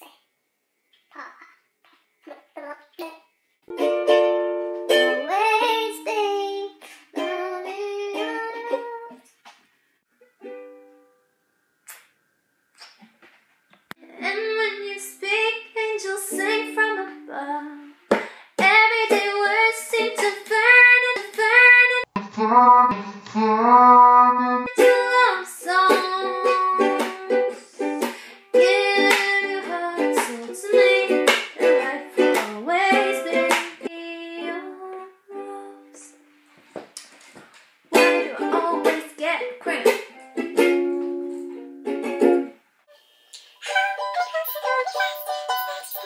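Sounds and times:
ukulele: 3.7 - 9.3, 10.1 - 11.3, 16.0 - 23.8, 24.4 - 36.4, 37.9 - 42.7, 43.3 - 46.0
woman singing slow melody: 14.0 - 18.0, 28.6 - 36.2.

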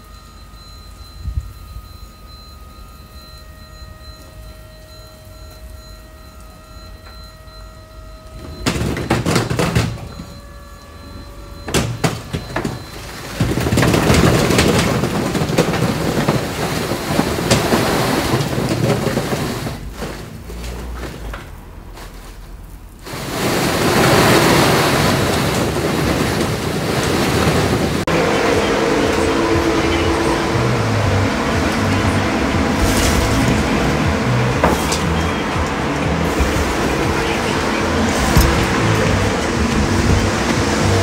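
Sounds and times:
hydraulic lift whine: 0.0 - 41.0
rubble sliding and pouring: 12.4 - 21.3, 23.1 - 28.0, 32.8 - 34.0.

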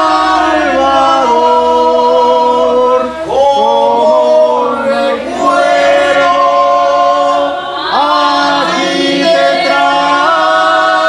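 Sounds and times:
congregation singing a hymn: 0.0 - 11.0.

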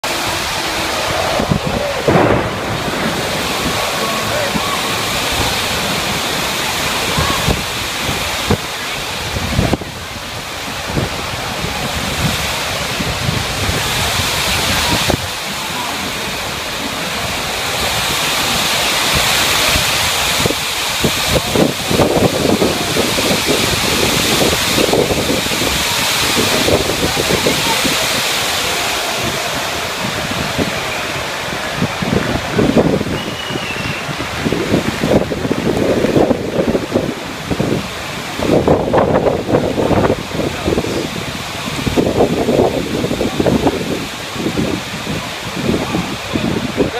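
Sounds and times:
heavy rain pouring: 0.0 - 46.9
thunder: 0.7 - 8.6.

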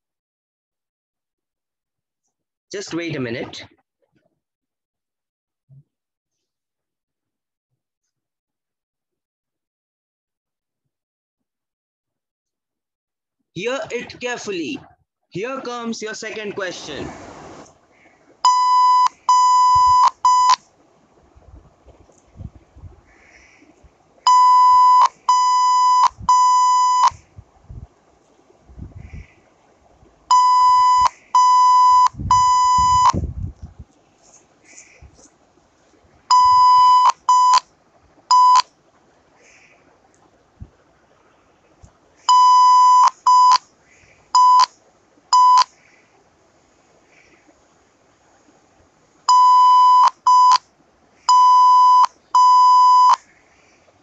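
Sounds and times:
morse code beeps: 18.4 - 20.6, 24.3 - 27.2, 30.3 - 33.2, 36.3 - 37.6, 38.3 - 38.7, 42.3 - 43.6, 44.4 - 44.7, 45.4 - 45.7, 49.3 - 50.6, 51.3 - 53.2.

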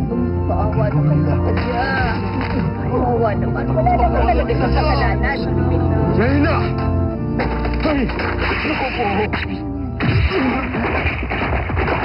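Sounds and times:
wood cracking and clattering: 6.6 - 9.0, 10.2 - 12.0.

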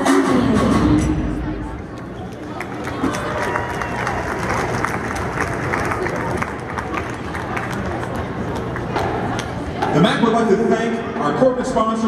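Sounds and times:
arena crowd chatter: 0.0 - 12.0.

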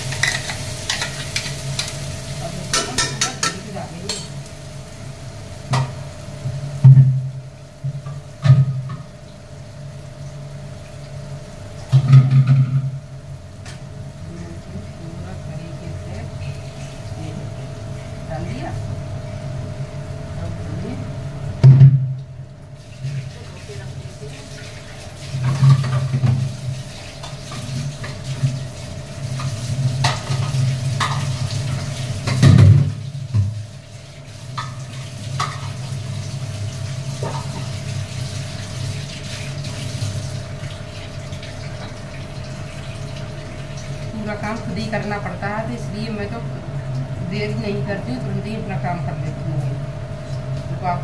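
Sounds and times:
steady hum: 0.0 - 51.0
metal utensils clanking: 2.7 - 4.4
tap water running into sink: 5.7 - 9.5, 10.2 - 13.0, 21.6 - 45.2.

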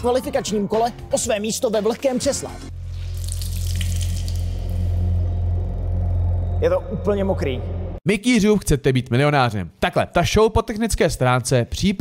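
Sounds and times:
steady low hum: 4.0 - 8.0.

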